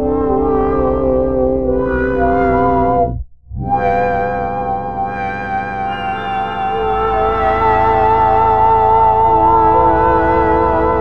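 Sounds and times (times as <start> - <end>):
synthesizer pad chord: 3.7 - 11.0.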